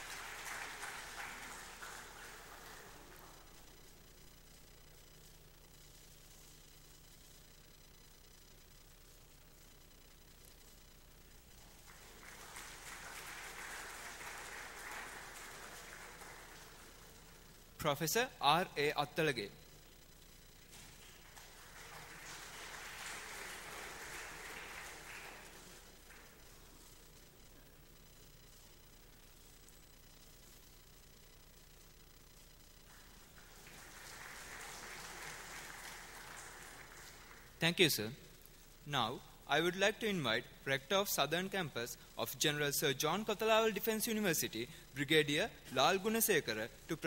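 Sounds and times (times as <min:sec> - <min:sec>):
faint audience applause: 0:00.0 - 0:03.9, 0:11.5 - 0:17.7, 0:20.7 - 0:26.9, 0:32.8 - 0:37.6.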